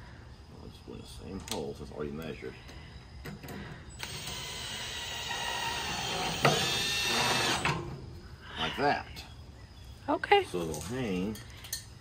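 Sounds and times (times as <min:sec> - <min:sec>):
cordless drill driving screw: 0:04.0 - 0:07.7.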